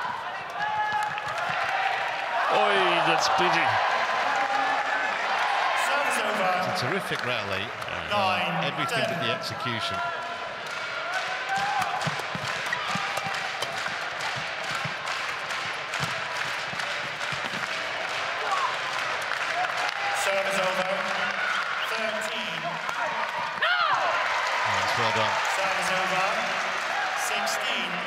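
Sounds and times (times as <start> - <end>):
crowd murmur: 6.5 - 9.9.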